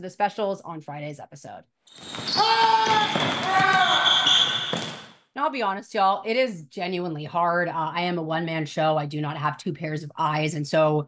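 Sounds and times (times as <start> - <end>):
high whistle-like tone: 3.8 - 5.0.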